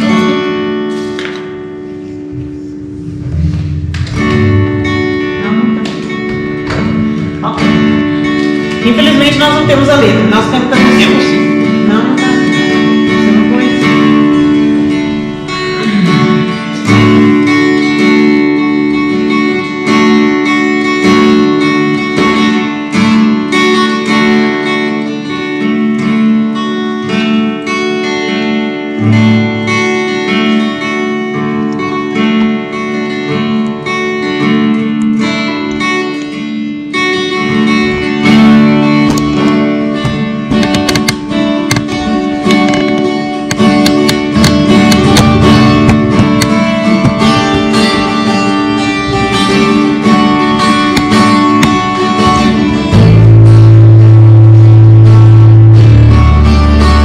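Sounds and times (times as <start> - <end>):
acoustic guitar strumming chords: 0.0 - 57.0.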